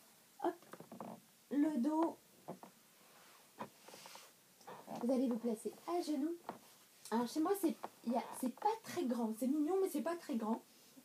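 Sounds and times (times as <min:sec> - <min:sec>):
light rustle: 0:02.4 - 0:09.0.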